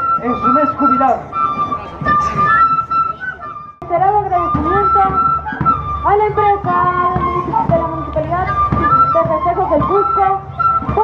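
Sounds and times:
flute-led festive dance music: 0.0s - 11.0s.

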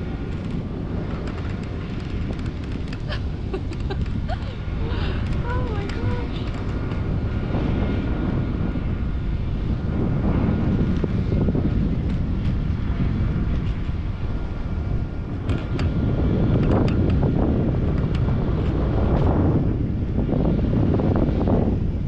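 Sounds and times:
wind buffeting microphone: 0.0s - 22.0s
sharp clicks: 0.3s - 4.2s.

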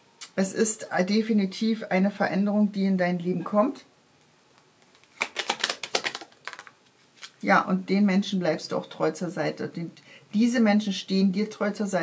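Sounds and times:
cards clicking and snapping: 4.8s - 7.4s.

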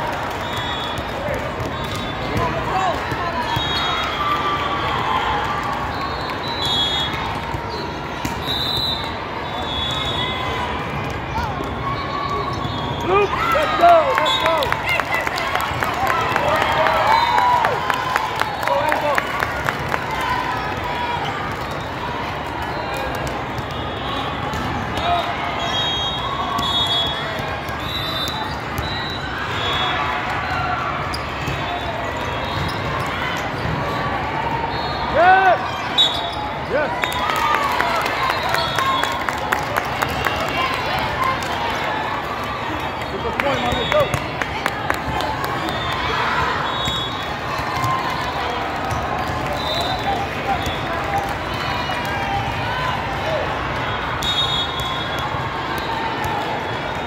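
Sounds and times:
chatter of players and spectators: 0.0s - 57.0s
volleyballs hit and bouncing: 0.2s - 8.5s, 10.5s - 14.2s, 18.8s - 34.0s, 40.0s - 57.0s
shoe squeaks: 35.7s - 36.6s.

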